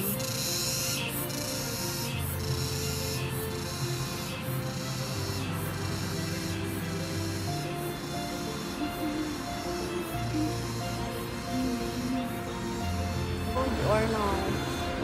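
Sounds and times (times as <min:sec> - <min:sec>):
crickets chirring: 0:00.0 - 0:15.0
music of held low notes: 0:00.0 - 0:15.0.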